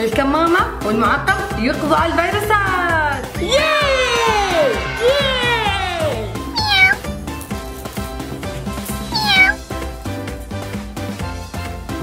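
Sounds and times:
background music: 0.0 - 12.0
cat meowing: 6.4 - 7.1, 9.0 - 9.6.

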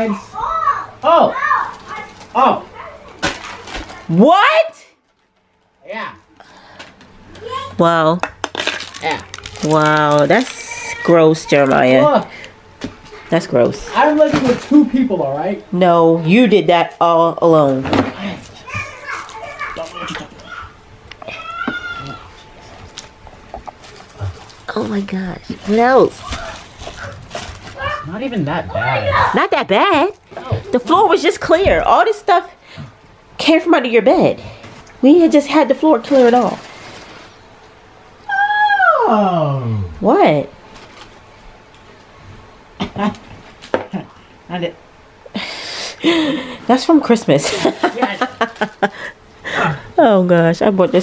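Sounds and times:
child's indistinct chatter: 18.6 - 22.4.

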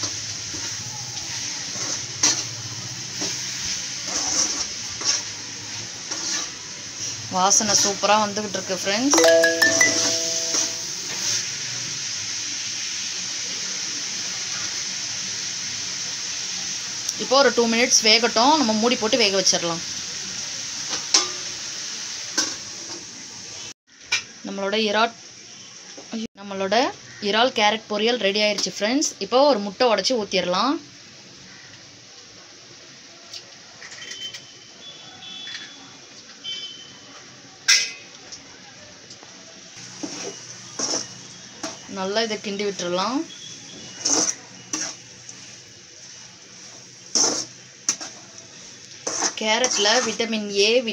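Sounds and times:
food sizzling in a pan: 0.0 - 50.9
spatula scraping metal pan: 4.1 - 5.2, 6.1 - 6.5, 43.8 - 45.0, 49.0 - 50.2.

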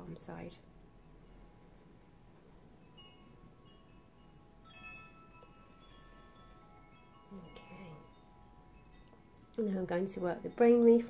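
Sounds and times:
faint chimes ringing: 0.7 - 11.0.

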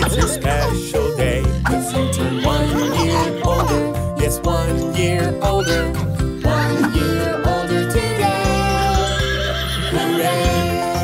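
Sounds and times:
upbeat children's song: 0.0 - 11.0
cartoon horse whinnying: 8.7 - 10.9.

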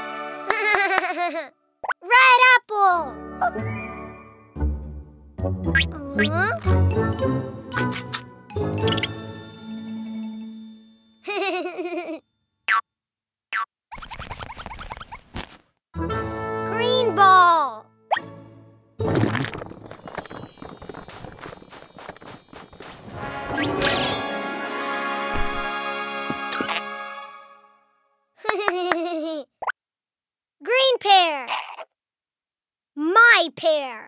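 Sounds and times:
cartoon plop tone: 5.7 - 6.8
little squeaks: 13.9 - 15.4.

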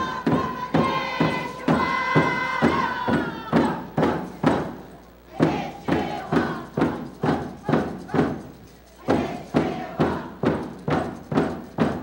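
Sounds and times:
frame drum beats: 0.0 - 12.0.

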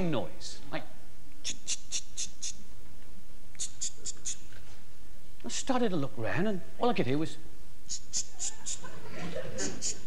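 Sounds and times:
man imitating scratching noise: 1.4 - 2.6, 3.6 - 4.6, 7.9 - 8.9, 9.6 - 10.0.

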